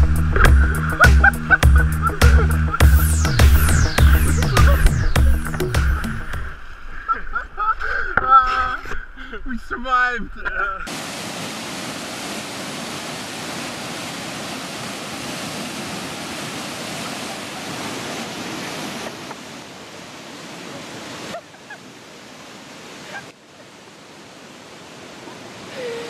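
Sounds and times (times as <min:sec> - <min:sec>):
river rapid rushing: 0:10.8 - 0:26.0.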